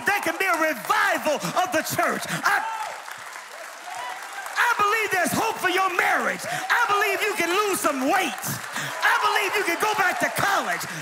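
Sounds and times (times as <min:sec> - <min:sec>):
preacher speaking: 0:00.0 - 0:02.8, 0:04.6 - 0:11.0
congregation applauding: 0:00.0 - 0:11.0.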